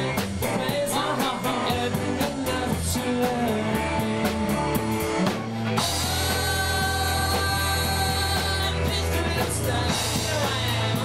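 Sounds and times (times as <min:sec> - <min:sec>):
person singing: 0:00.0 - 0:05.1, 0:05.8 - 0:11.0
drum kit beat: 0:00.0 - 0:11.0
electric guitar: 0:00.0 - 0:11.0.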